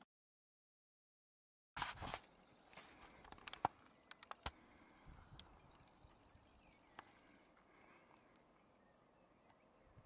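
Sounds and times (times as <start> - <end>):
faint open-air background: 1.8 - 10.0.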